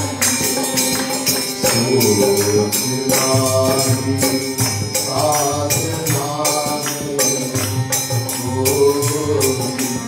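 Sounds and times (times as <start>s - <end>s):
jingling hand percussion: 0.0s - 10.0s
man chanting: 1.6s - 10.0s.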